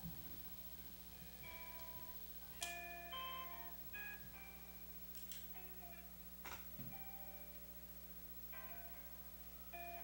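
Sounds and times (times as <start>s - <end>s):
steady electrical hum: 0.0s - 10.0s
soft guitar notes: 1.1s - 10.0s.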